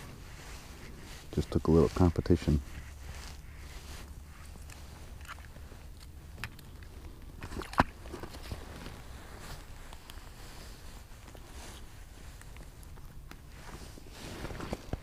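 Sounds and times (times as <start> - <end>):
light clicks and crunches: 0.0 - 15.0
low steady rumble: 0.0 - 15.0.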